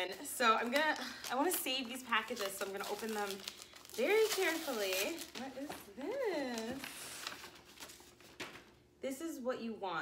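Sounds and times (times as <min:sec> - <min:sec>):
paper wrapping rustling and crinkling: 0:00.0 - 0:08.8.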